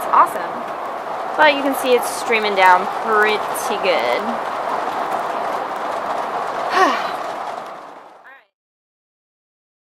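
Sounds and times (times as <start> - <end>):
heavy rain on a roof: 0.0 - 8.4.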